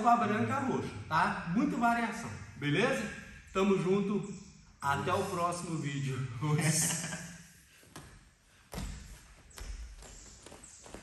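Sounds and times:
bare feet shuffling on mats: 0:07.6 - 0:11.0.

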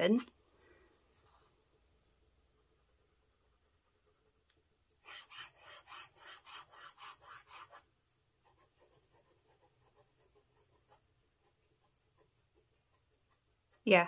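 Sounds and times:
pen nib scratching on paper: 0:01.1 - 0:14.0.

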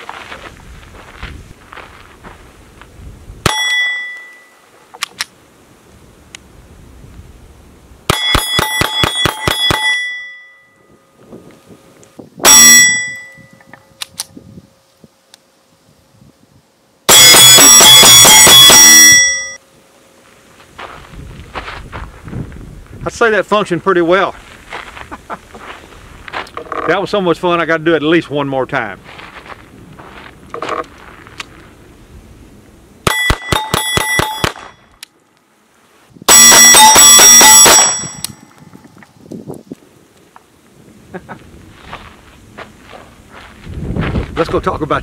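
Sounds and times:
steel plate ringing clang: 0:03.5 - 0:04.6, 0:08.1 - 0:11.2, 0:12.4 - 0:13.6, 0:17.1 - 0:19.6, 0:33.1 - 0:34.9, 0:36.3 - 0:38.6
pistol shots: 0:17.1 - 0:19.2.

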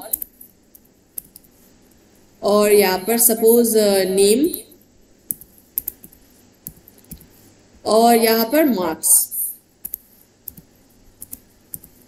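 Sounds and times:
computer keyboard keystrokes: 0:00.1 - 0:01.5, 0:05.3 - 0:07.3, 0:09.8 - 0:12.0.

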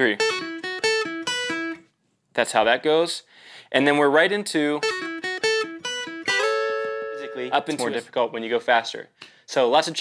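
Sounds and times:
acoustic guitar lead lick: 0:00.0 - 0:01.9, 0:04.7 - 0:08.1.

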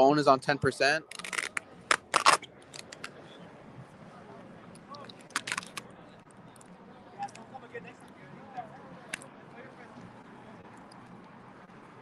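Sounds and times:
phone handling scraping and rustling: 0:01.1 - 0:03.2, 0:05.0 - 0:05.8.

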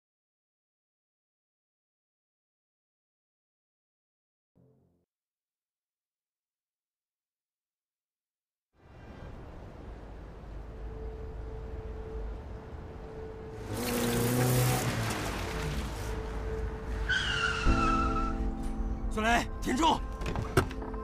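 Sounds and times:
tyres squealing: 0:16.9 - 0:18.4.

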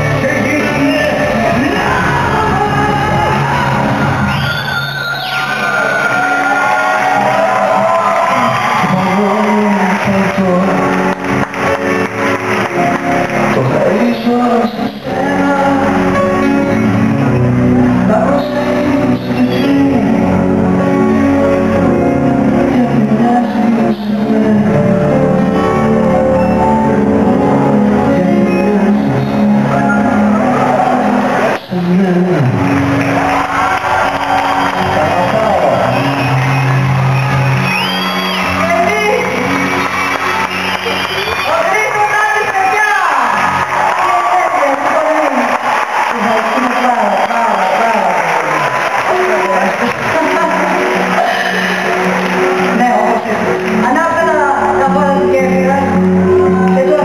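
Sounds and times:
man singing: 0:00.0 - 0:03.8, 0:08.8 - 0:11.0, 0:13.5 - 0:17.3, 0:17.9 - 0:20.9, 0:22.6 - 0:25.4, 0:27.7 - 0:32.7
live pop-rock band: 0:00.0 - 0:47.0, 0:48.6 - 0:57.0.

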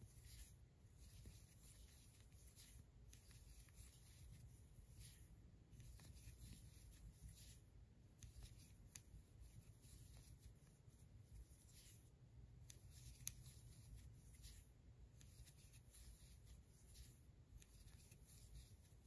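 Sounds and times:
crochet hook rustling yarn: 0:00.0 - 0:19.0.

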